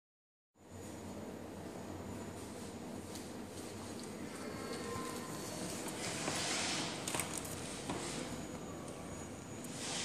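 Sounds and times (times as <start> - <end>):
indoor room background noise: 0.6 - 10.0.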